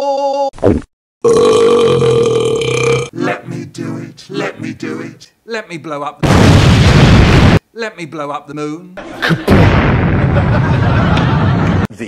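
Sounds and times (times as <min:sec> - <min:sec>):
man burping: 0:00.7 - 0:03.1.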